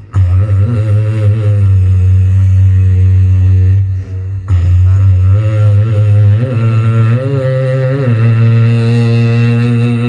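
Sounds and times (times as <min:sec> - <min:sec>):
low steady drone: 0:00.0 - 0:10.0
man singing long note: 0:00.0 - 0:10.0.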